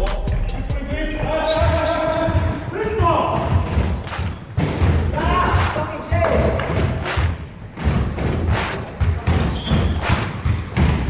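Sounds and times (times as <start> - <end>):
players calling out: 0.0 - 4.4
feet pounding running: 1.4 - 11.0
basketball thudding on wooden floor: 2.3 - 5.7, 6.6 - 11.0.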